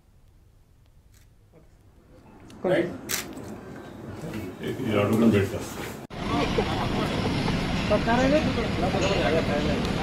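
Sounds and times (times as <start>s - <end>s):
vehicle rumble: 6.1s - 10.0s.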